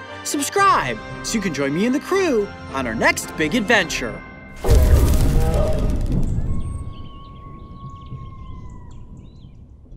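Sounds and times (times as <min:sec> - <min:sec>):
low rumble: 0:04.6 - 0:09.9
small birds chirping: 0:05.7 - 0:09.9.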